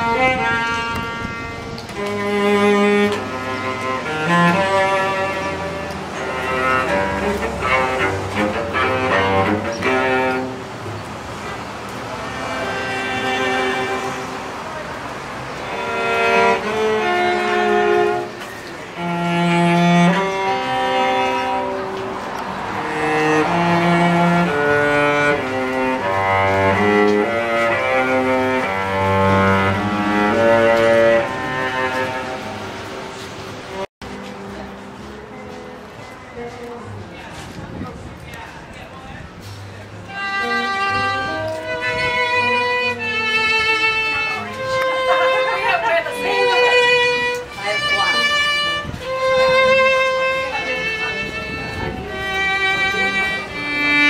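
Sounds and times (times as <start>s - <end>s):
bowed string instrument melody: 0.0s - 54.0s.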